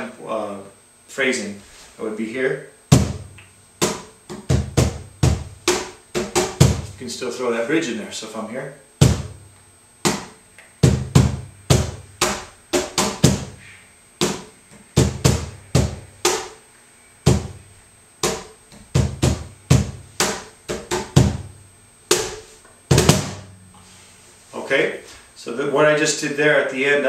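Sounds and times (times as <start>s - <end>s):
cajon played by hand: 3.8s - 7.0s, 10.0s - 13.6s, 14.2s - 16.5s, 18.2s - 21.5s, 22.1s - 23.5s.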